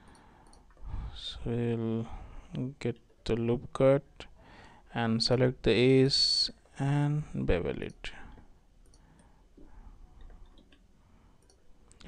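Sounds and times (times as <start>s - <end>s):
computer mouse clicks: 8.8s - 12.0s.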